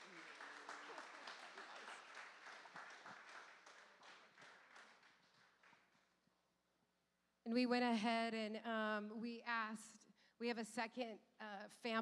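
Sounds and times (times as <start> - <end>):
audience applause: 0.0 - 5.9.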